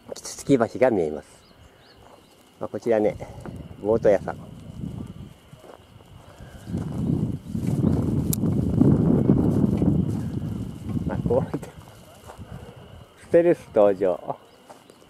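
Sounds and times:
wind buffeting microphone: 0:03.0 - 0:14.0.

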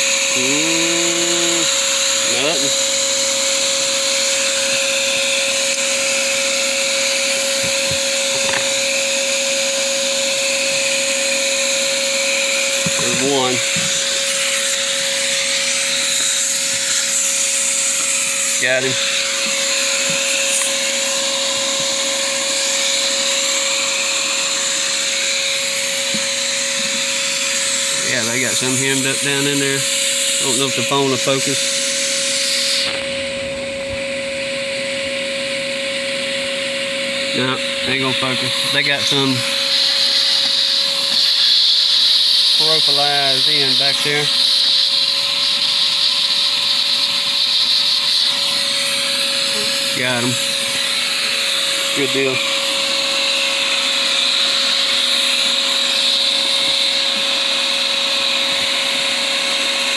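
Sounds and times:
vacuum motor whining: 0:00.0 - 0:59.9.

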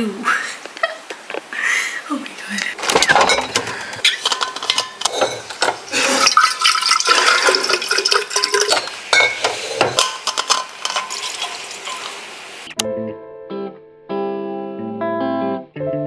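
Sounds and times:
bottles clicking and knocking: 0:02.8 - 0:12.2
water pouring into bottle: 0:05.9 - 0:09.8.

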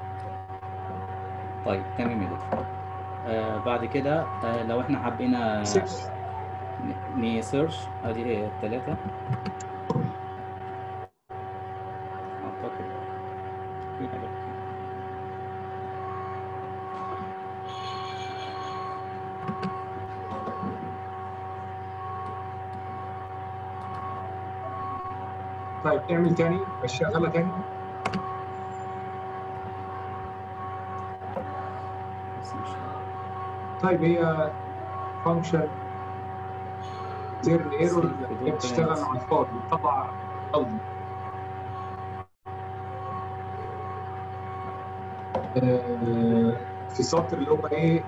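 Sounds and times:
constant pitched whine: 0:00.0 - 0:48.0
electrical hum: 0:00.0 - 0:48.0.

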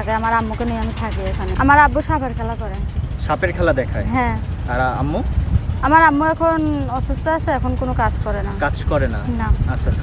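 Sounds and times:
woman talking: 0:00.0 - 0:02.9, 0:05.8 - 0:08.6
steady low rumble: 0:00.0 - 0:10.0.

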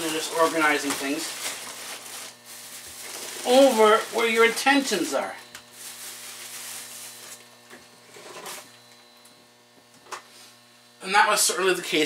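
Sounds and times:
faint electrical mains hum: 0:00.0 - 0:12.0
soft rustles: 0:05.5 - 0:07.5.

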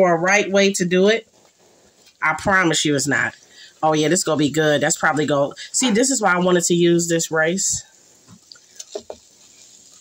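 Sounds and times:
spatula scraping a frying pan: 0:08.4 - 0:10.0.

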